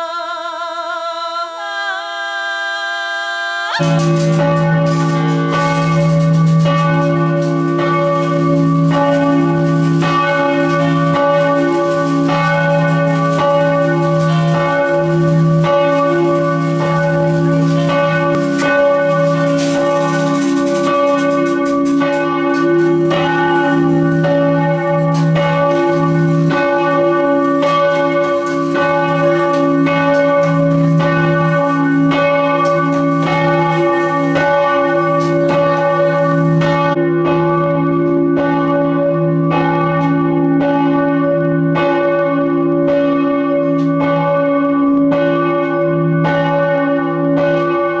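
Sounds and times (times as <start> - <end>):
church bell ringing: 3.8 - 48.0.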